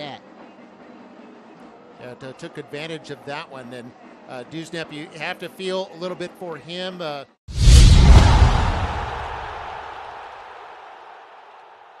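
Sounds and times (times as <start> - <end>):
deep impact hit: 7.5 - 9.9
brief whoosh: 7.5 - 10.0.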